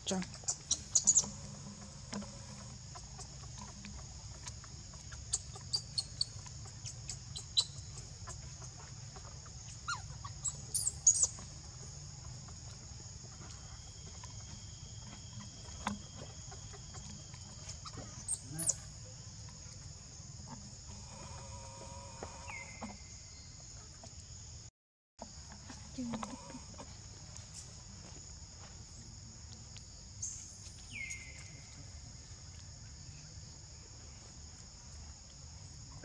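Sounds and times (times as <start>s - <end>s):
high insect drone: 0.0s - 36.0s.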